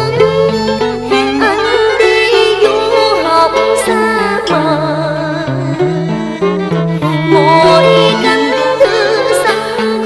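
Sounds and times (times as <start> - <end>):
person singing ornamented melody: 0.0 - 6.2, 7.0 - 10.0
traditional ensemble: 0.0 - 10.0.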